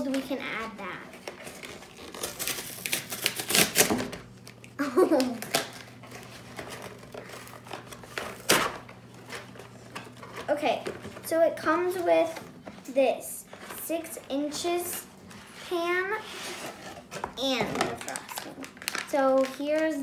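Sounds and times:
cardboard box tearing: 1.4s - 4.1s.

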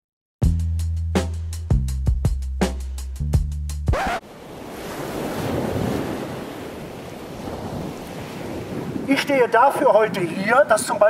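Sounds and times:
wind blowing on microphone: 4.0s - 11.0s.

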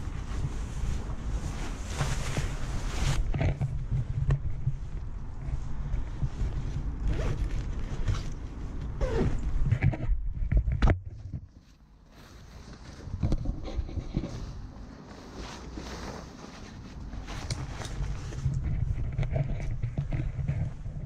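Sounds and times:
clothing and gear rustling: 0.0s - 10.6s, 11.2s - 21.0s
wind rumble on microphone: 0.0s - 11.5s, 16.8s - 21.0s.

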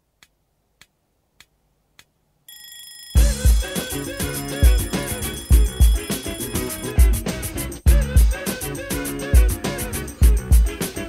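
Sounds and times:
high steady electronic tone: 2.5s - 9.6s
heavy kick drum: 3.2s - 3.8s, 4.6s - 6.1s, 7.0s - 7.3s, 7.9s - 8.4s, 10.2s - 10.8s
sharp electronic ticks: 3.2s - 7.8s
bass: 3.2s - 11.0s.

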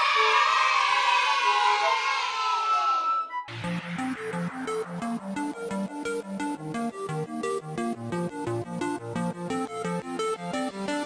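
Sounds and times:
crowd cheering: 0.0s - 3.5s
electronic dance music: 3.4s - 11.0s.

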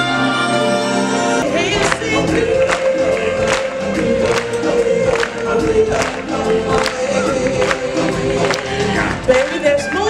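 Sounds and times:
choir singing over a steady beat: 0.0s - 9.6s.

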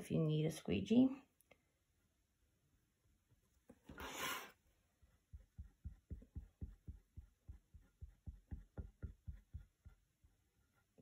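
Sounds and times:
squeegee strokes on screen: 3.8s - 11.0s.

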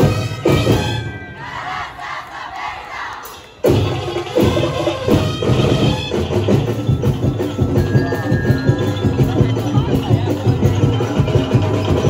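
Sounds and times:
percussion music with wooden knocks: 3.2s - 12.0s.

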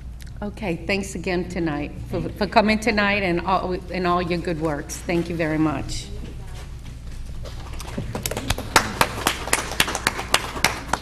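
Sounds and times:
small group applauding: 7.5s - 11.0s.

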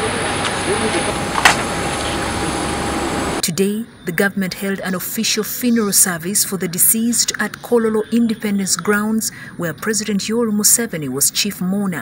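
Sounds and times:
faint voices: 0.0s - 1.4s
steady engine noise: 0.0s - 3.4s
high whine: 0.0s - 8.5s.

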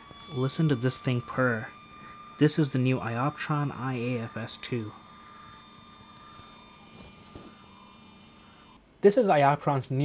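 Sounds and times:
focuser motor whining: 0.0s - 8.8s.

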